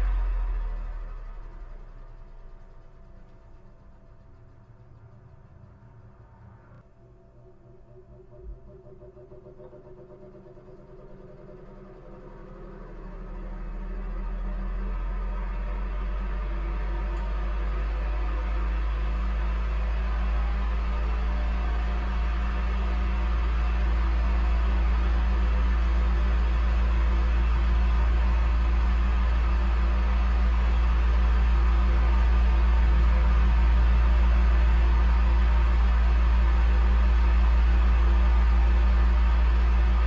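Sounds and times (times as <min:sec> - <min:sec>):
electric fan running: 0:00.0 - 0:40.0.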